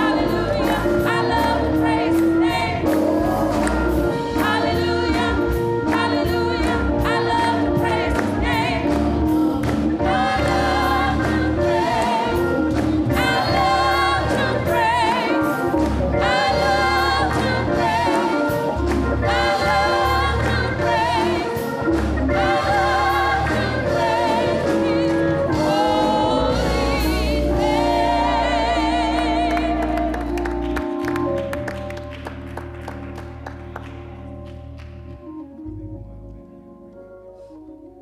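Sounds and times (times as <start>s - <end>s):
women's choir singing: 0.0s - 30.3s
low instrumental backing: 0.0s - 38.0s.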